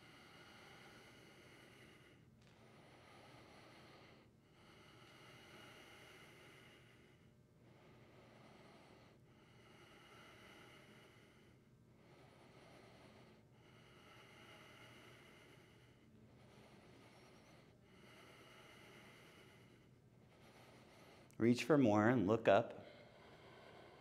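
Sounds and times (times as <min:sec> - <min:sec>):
slow breathing through the nose: 0:00.0 - 0:22.0, 0:22.7 - 0:24.0.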